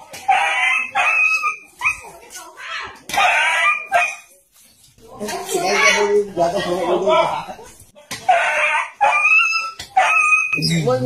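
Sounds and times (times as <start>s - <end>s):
dog yelping and howling: 0.3s - 2.1s, 3.2s - 4.2s, 8.3s - 10.6s.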